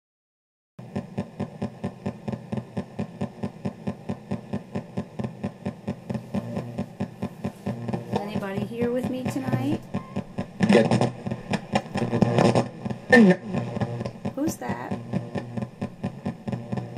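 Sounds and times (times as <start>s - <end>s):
ghost box static chopping: 0.8s - 16.9s.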